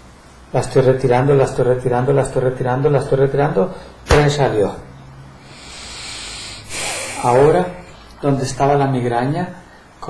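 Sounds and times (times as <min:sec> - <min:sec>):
soft rubbing hiss: 0:05.4 - 0:08.7.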